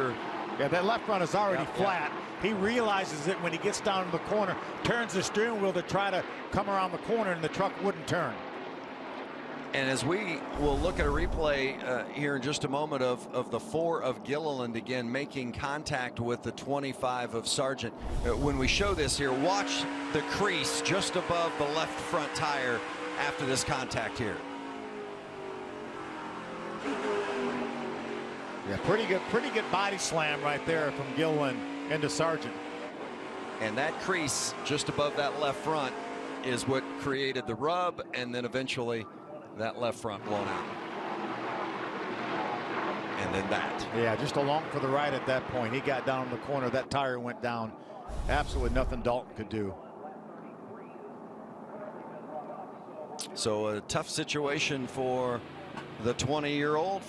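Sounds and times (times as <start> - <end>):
race truck engine at speed: 0.0 - 13.0, 17.9 - 38.5, 39.1 - 47.0
faint voices: 47.1 - 53.8.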